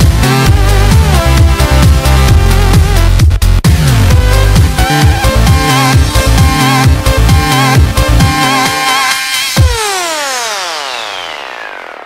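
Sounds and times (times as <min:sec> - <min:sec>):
synthesizer tone gliding down: 0:05.1 - 0:12.0.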